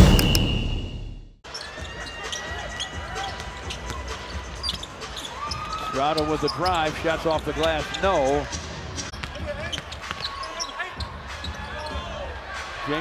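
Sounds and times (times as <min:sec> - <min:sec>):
drum-heavy music: 0:00.0 - 0:00.6, 0:01.8 - 0:10.1, 0:11.0 - 0:13.0
arena crowd: 0:01.5 - 0:13.0
basketball bouncing on court: 0:09.1 - 0:12.1.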